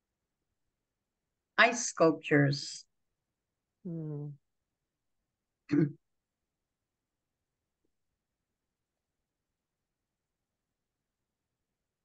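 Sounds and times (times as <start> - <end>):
person clearing throat: 5.7 - 6.0.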